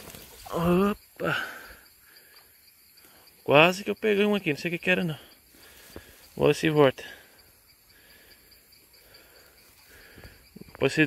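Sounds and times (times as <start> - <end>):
insect chirping: 0.0 - 11.0.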